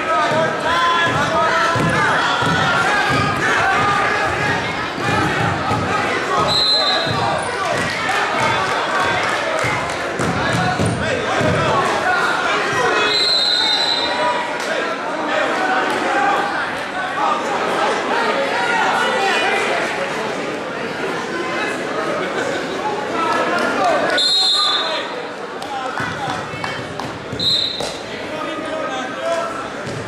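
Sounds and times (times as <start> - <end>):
people shouting and chattering: 0.0 - 30.0.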